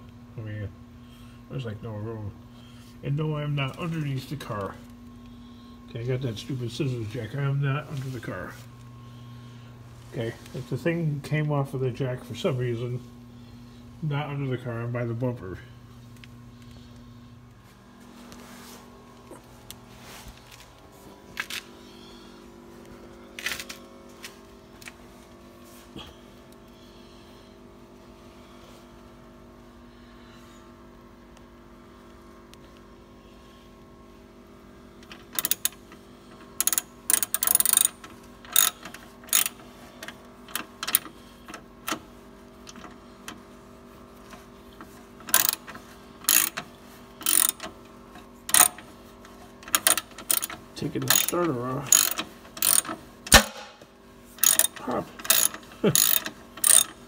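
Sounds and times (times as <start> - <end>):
steady low hum: 0.0 - 57.0
ratchet wrench clicking: 35.3 - 35.8, 36.6 - 39.6, 45.2 - 47.7, 48.5 - 48.9, 49.6 - 53.6, 54.4 - 57.0.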